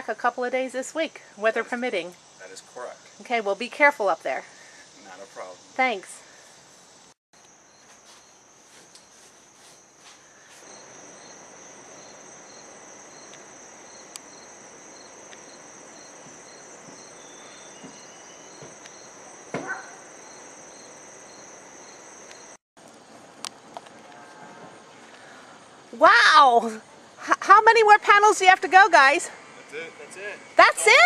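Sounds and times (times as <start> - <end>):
insects chirping: 0.0 - 31.0
faint hiss: 0.2 - 31.0.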